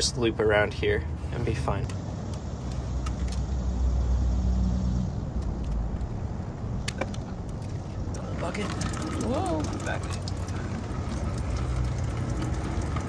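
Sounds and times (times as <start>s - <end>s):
vehicle engine rumble: 0.0s - 13.0s.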